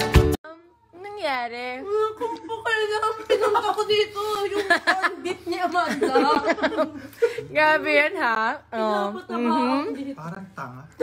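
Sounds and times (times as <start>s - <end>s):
background music: 0.0s - 0.4s.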